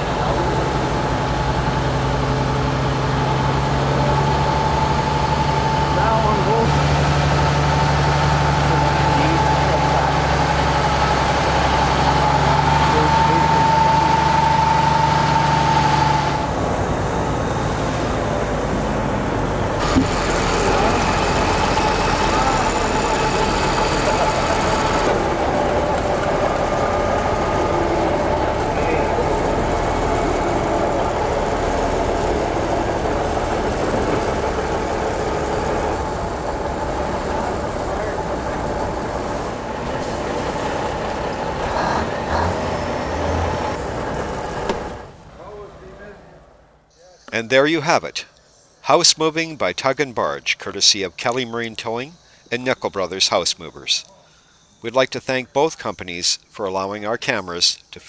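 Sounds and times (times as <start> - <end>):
truck diesel engine running: 0.0 - 48.0.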